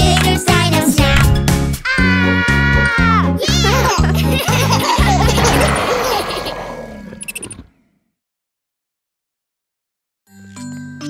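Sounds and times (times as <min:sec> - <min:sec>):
children's song: 0:00.0 - 0:05.5
cartoon roar: 0:01.8 - 0:04.0, 0:05.0 - 0:07.5.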